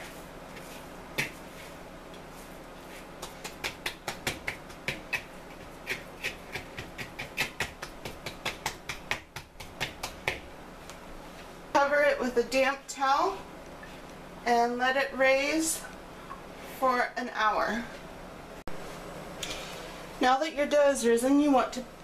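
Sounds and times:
dough smacking in wooden bowl: 0:00.6 - 0:01.5, 0:02.9 - 0:11.0.

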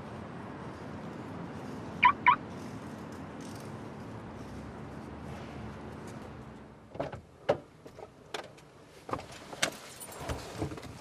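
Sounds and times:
low street hum: 0:00.0 - 0:11.0
car alarm chirps: 0:02.0 - 0:02.4.

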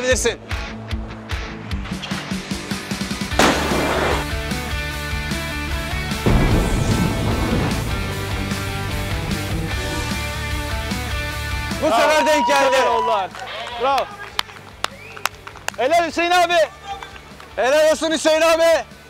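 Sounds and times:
background music: 0:00.0 - 0:19.0
car crashing onto ground: 0:03.4 - 0:04.3, 0:06.2 - 0:08.8.

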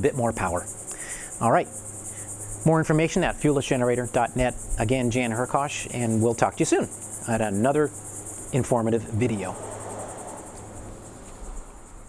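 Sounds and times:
low steady hum: 0:00.0 - 0:09.6
crickets chirping: 0:00.0 - 0:12.0.

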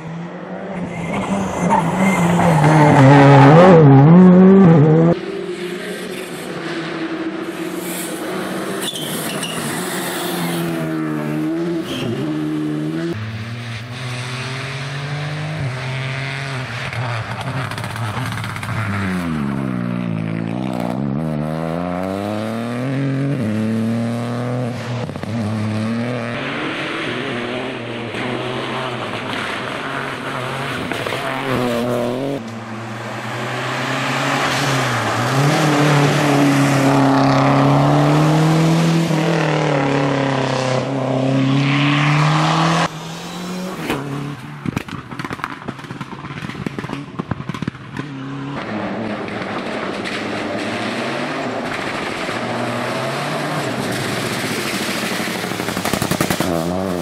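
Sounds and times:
rally car engines revving: 0:00.0 - 0:57.0.

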